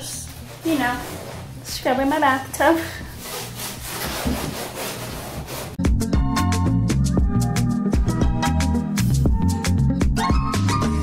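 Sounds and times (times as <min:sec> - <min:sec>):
sponge scrubbing bathtub: 0:00.0 - 0:05.8
music with drum beat: 0:05.8 - 0:10.7.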